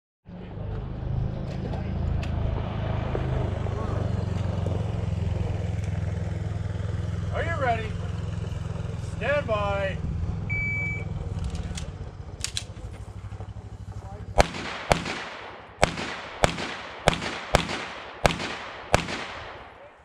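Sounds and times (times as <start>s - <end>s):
shot timer beep: 10.5s - 11.1s
pistol shots with echo: 14.3s - 20.0s.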